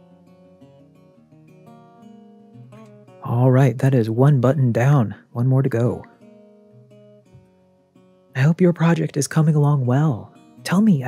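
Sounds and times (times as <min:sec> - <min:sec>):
soft acoustic guitar music: 0:00.0 - 0:11.0.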